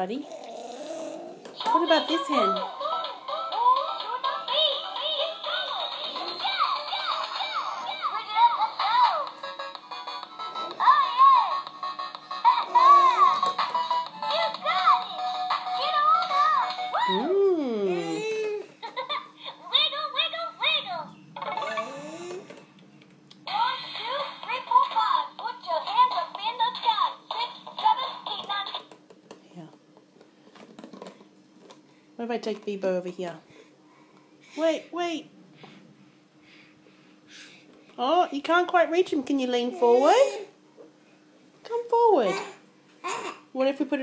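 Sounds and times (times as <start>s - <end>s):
electronic music toy tune: 1.9s - 17.2s.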